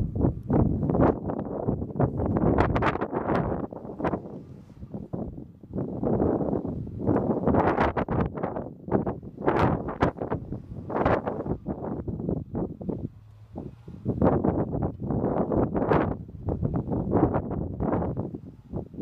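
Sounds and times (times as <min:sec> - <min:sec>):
gusty wind buffeting microphone: 0:00.0 - 0:19.0.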